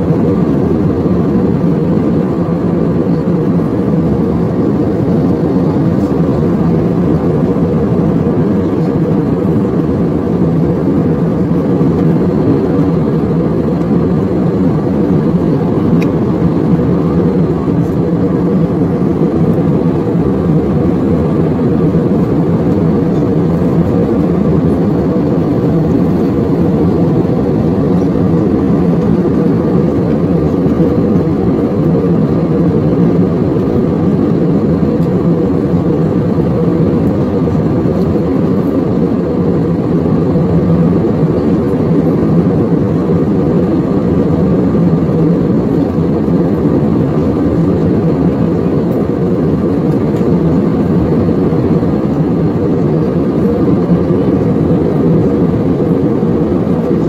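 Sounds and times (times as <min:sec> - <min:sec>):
jet cabin engine roar: 0:00.0 - 0:57.0.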